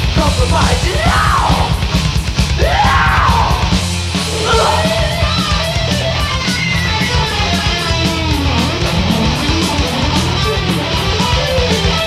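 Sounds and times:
bass guitar: 0.0s - 12.0s
distorted electric guitars: 0.0s - 12.0s
fast drums: 0.0s - 12.0s
person yelling vocals: 0.3s - 1.8s, 2.6s - 3.7s, 4.3s - 5.2s.

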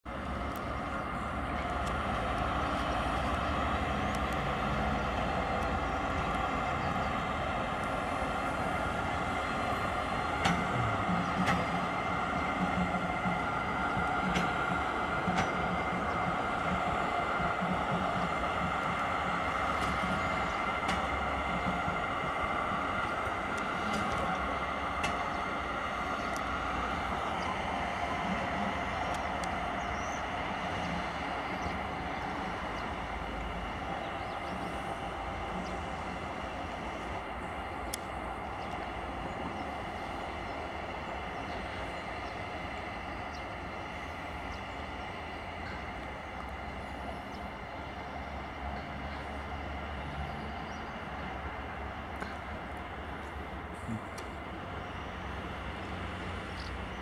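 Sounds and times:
diesel locomotive droning hum: 0.0s - 57.0s.

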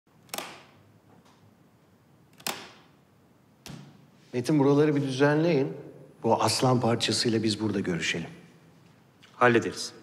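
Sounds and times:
sharp clicks echoing in a room: 0.1s - 1.5s, 2.2s - 3.0s, 3.6s - 4.0s.

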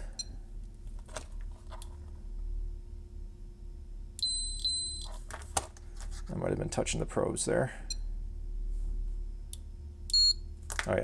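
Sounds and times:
high electronic meter beep: 4.2s - 5.1s, 10.1s - 10.5s.

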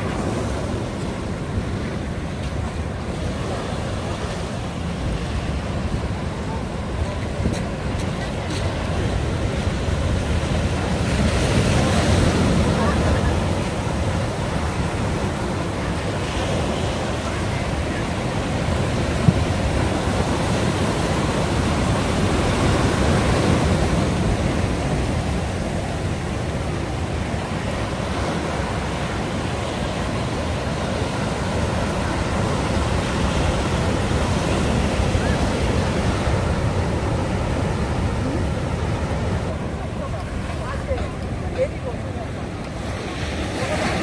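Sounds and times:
sea surf breaking on rocks: 0.0s - 44.0s.

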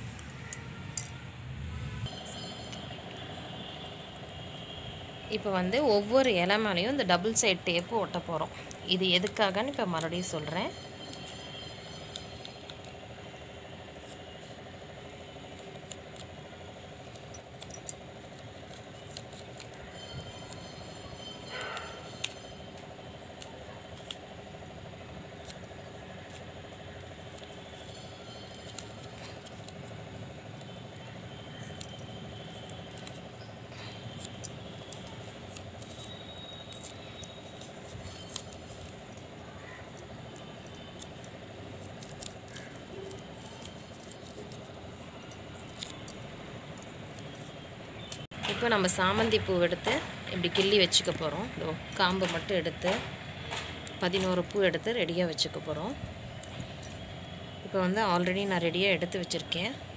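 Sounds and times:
background hum: 2.1s - 59.9s.

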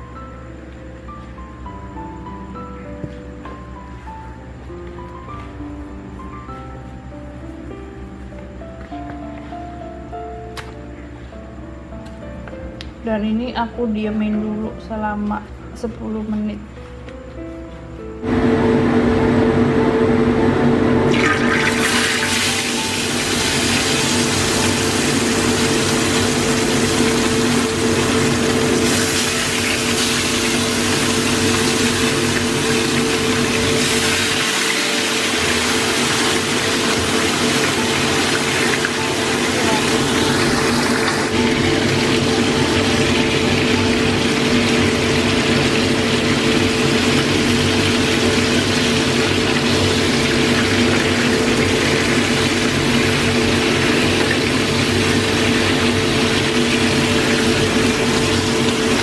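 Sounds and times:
fish sizzling in oil: 21.1s - 59.0s.

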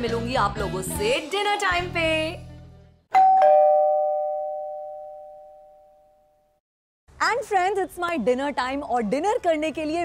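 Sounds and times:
two-note doorbell chime: 3.1s - 6.4s.

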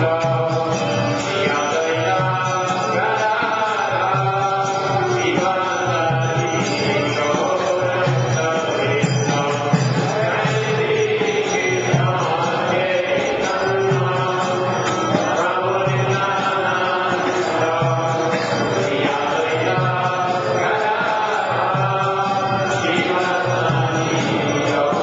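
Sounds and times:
devotional mantra chanting: 0.0s - 25.0s.

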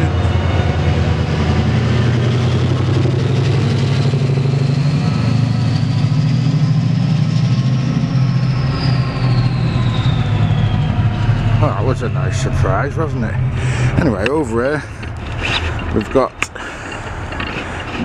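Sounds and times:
diesel locomotive engines throbbing: 0.0s - 18.0s
thin high whine: 2.8s - 16.1s.

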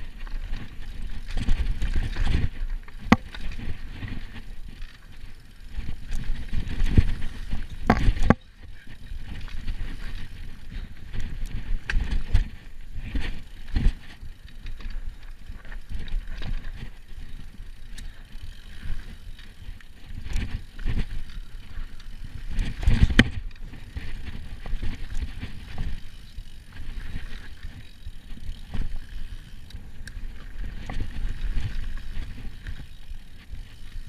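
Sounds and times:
bike knocks and rattles: 0.0s - 34.0s.

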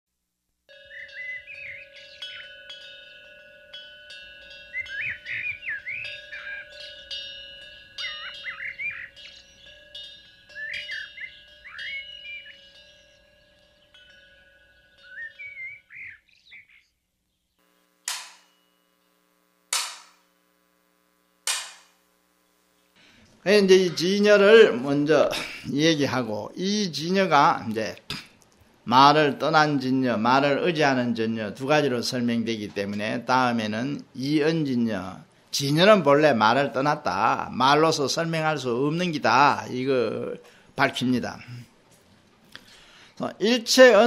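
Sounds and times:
sharp ringing strikes: 0.7s - 15.9s, 18.1s - 19.0s
held musical tone: 0.7s - 16.2s
birds chirping: 0.7s - 17.7s.

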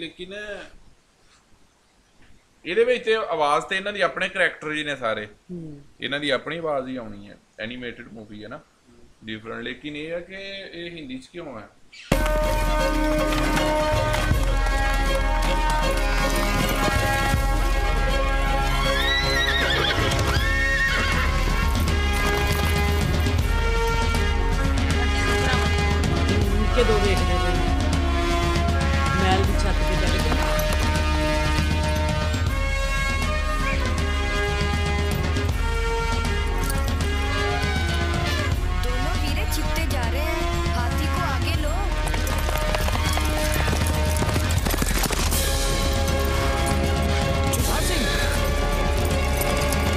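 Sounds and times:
hoofbeats: 12.1s - 26.6s, 28.6s - 33.9s, 41.5s - 49.9s
background music: 12.1s - 49.9s
horse whinnying: 18.5s - 23.2s, 42.0s - 45.4s.

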